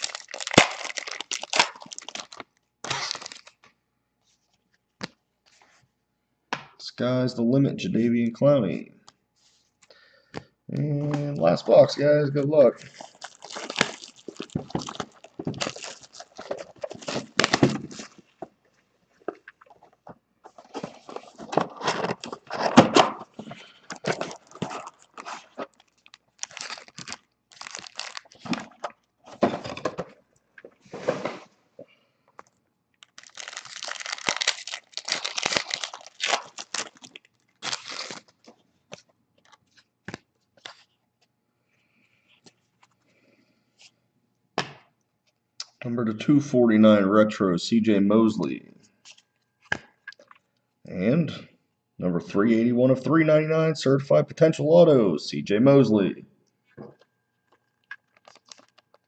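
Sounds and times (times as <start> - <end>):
foil card packs crinkling and ripping: 0.0 - 3.7, 12.8 - 18.3, 20.5 - 30.0, 33.0 - 40.9, 57.5 - 59.0.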